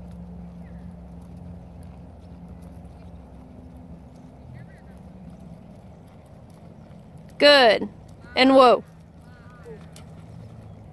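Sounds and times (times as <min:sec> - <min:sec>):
low steady rumble: 0:00.0 - 0:10.9
muffled hoofbeats on sand: 0:00.0 - 0:10.9.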